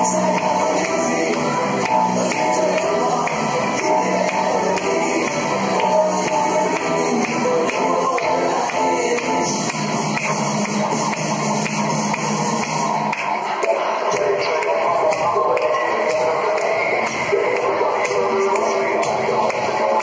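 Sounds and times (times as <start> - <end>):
music with steady beat: 0.0 - 20.0.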